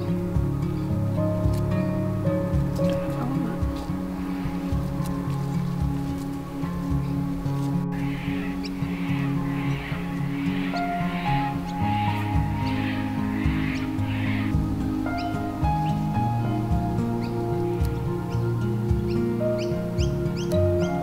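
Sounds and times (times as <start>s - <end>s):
instrumental background music: 0.0s - 21.0s
pulsing hiss: 2.6s - 18.4s.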